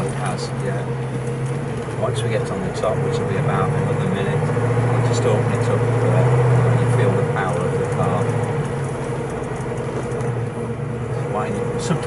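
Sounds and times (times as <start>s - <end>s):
car engine low drone: 0.0s - 12.0s
road noise: 0.0s - 12.0s.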